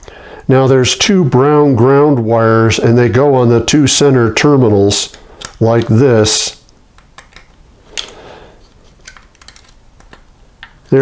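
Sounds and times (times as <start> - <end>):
wire connectors clicking: 5.0 - 6.0, 6.6 - 8.2, 8.9 - 11.0.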